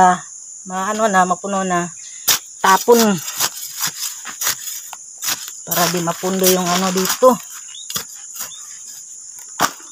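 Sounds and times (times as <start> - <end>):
crickets chirring: 0.0 - 9.9
grass rustling into plastic pot: 2.3 - 9.9.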